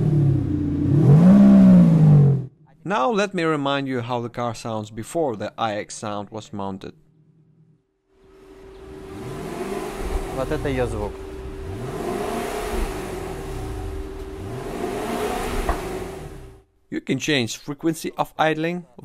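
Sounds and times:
car engine revving: 0.0s - 2.5s, 8.2s - 16.6s.

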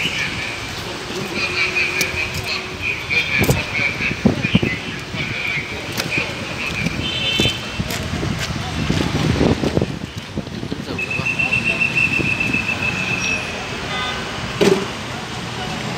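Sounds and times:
indistinct voices: 0.0s - 15.9s
passing traffic: 0.0s - 15.9s.

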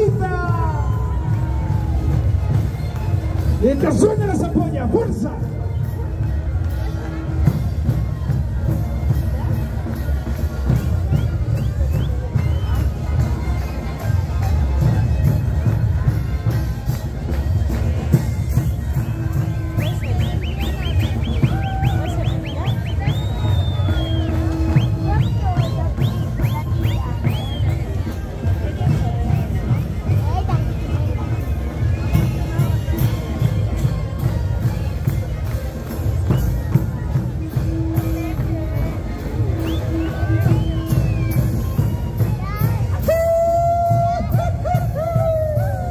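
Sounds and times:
crowd chatter: 0.0s - 45.9s
panpipes: 0.0s - 45.9s.

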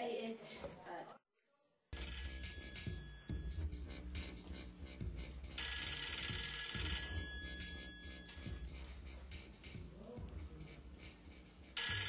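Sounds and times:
telephone ringing: 2.0s - 3.6s, 5.6s - 8.6s, 11.8s - 12.0s.

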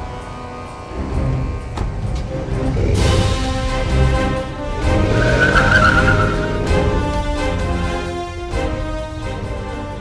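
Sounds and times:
truck tyres skidding: 4.6s - 7.6s.

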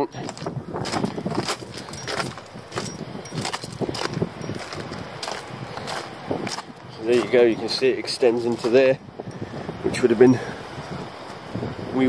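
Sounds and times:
footsteps on gravel: 0.2s - 8.8s.

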